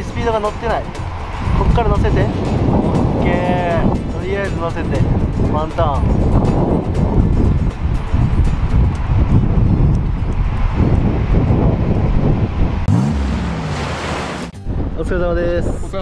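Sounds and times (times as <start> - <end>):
wind buffeting microphone: 0.0 - 13.0, 14.6 - 16.0
breaking surf: 12.8 - 14.6.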